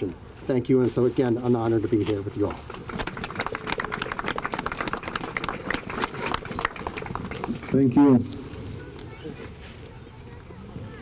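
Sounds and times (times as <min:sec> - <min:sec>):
audience applauding: 0:02.7 - 0:07.9.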